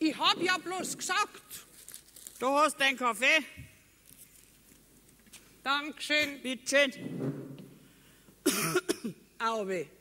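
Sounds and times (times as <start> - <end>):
person coughing: 8.4 - 9.3.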